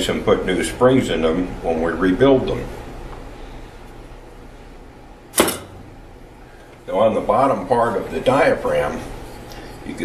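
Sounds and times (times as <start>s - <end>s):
metal part clunk on workbench: 5.4s - 5.8s.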